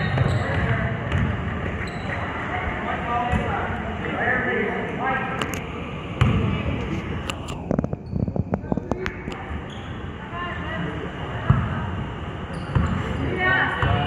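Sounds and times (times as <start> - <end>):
spectators chattering: 0.0 - 14.0.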